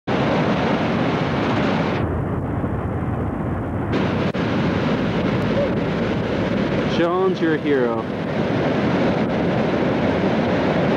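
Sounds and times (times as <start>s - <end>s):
breaking surf: 0.1s - 10.9s
wind on microphone: 0.1s - 10.9s.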